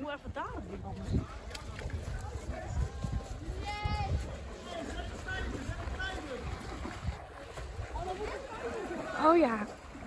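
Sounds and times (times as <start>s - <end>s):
wind rumble on microphone: 0.0s - 8.5s.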